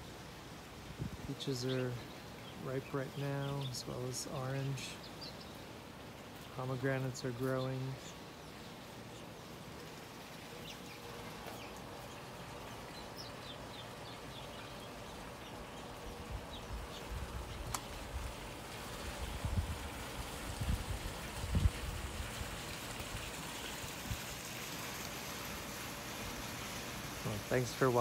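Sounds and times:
steady hiss: 0.0 - 28.0.

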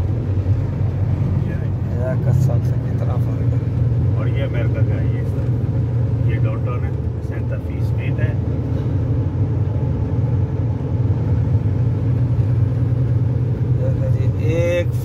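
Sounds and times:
engine and tyre drone: 0.0 - 15.0.

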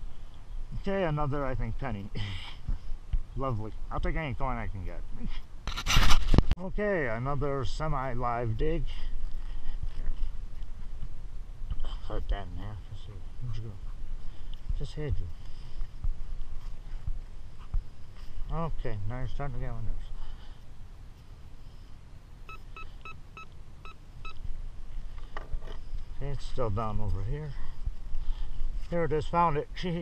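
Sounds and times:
metal detector pinpointer beeping: 22.5 - 24.4.

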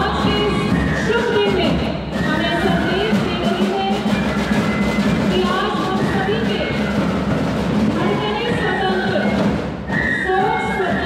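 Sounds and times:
voices: 0.0 - 4.2, 5.3 - 7.0, 7.9 - 11.0
marching band drums: 0.0 - 11.0.

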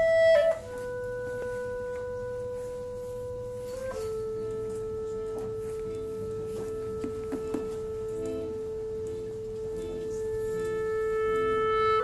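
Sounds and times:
clarinet holding long notes: 0.0 - 12.0
faint taps: 6.6 - 8.4.

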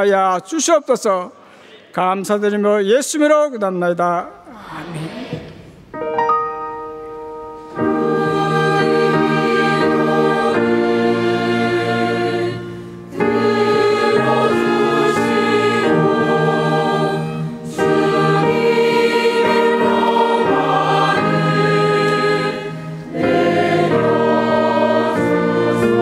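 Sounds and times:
choir singing in parts: 7.7 - 26.0.

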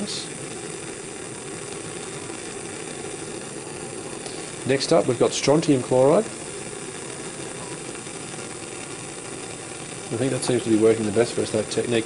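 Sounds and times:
burner flame hissing: 0.0 - 12.0.

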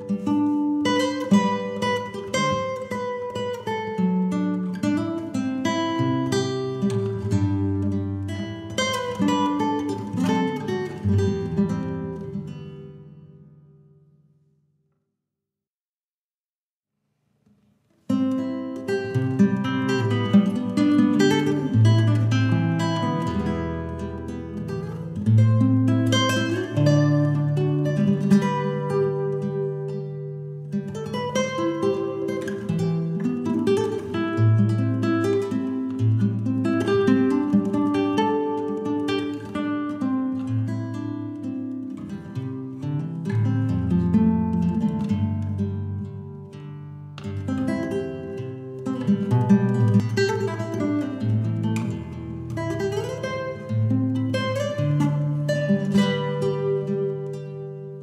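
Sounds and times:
solo classical guitar: 0.0 - 14.7, 17.2 - 58.0.

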